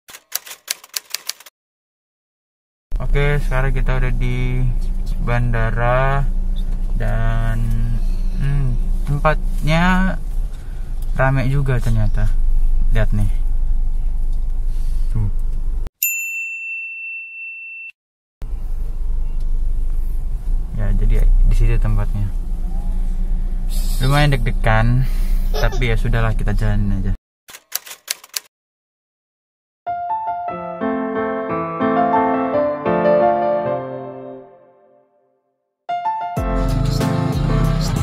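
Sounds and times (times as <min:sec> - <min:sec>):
typewriter key clicks: 0:00.1 - 0:01.5, 0:27.5 - 0:28.5
high clear ding: 0:16.0 - 0:18.0.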